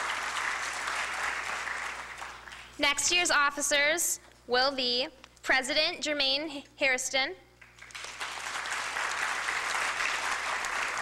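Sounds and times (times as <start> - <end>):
audience applauding: 0.0 - 2.8, 7.6 - 11.0.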